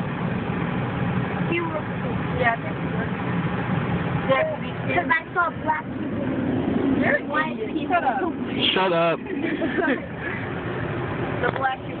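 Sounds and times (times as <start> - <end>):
car engine and road noise: 0.0 - 12.0
people talking: 1.5 - 3.2, 4.3 - 10.3, 11.4 - 12.0
person laughing: 9.2 - 10.4.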